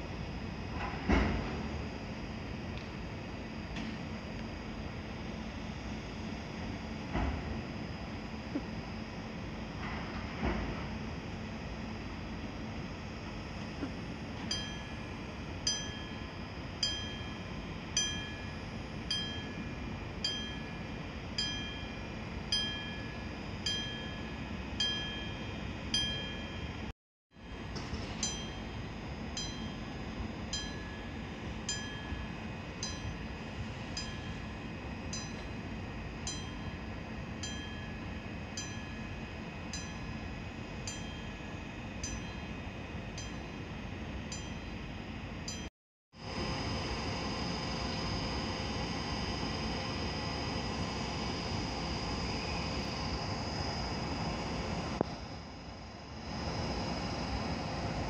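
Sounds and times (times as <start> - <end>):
steady low hum: 0.0 - 58.0
bell-like signal dinging: 14.5 - 26.9, 27.5 - 28.8, 29.4 - 33.2, 34.0 - 35.5, 37.4 - 40.2, 40.9 - 42.5, 43.1 - 43.6, 44.3 - 44.8, 45.5 - 45.7.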